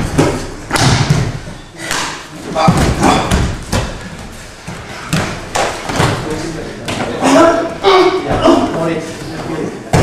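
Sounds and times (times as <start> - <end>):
bodies thumping on gym mats: 2.6 - 6.3.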